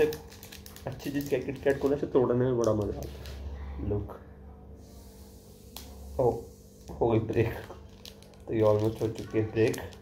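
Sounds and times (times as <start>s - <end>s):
chocolate wafer bar snapping: 0.0s - 3.4s, 7.4s - 10.0s
faint room hum: 0.0s - 10.0s.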